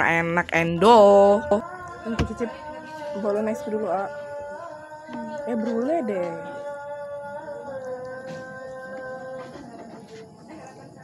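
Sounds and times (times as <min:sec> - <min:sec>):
woman humming: 0:05.0 - 0:06.8.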